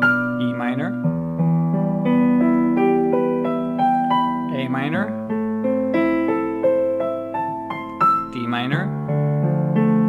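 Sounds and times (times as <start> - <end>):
piano broken chord: 0.0 - 10.0.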